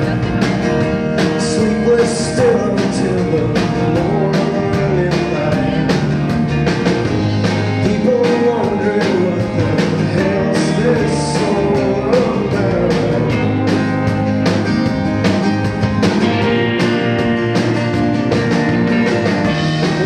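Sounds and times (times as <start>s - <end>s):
acoustic guitar: 0.0s - 20.0s
drum beat: 0.0s - 20.0s
live rock band: 0.0s - 20.0s
man singing: 1.0s - 6.4s, 7.4s - 14.0s, 19.4s - 20.0s.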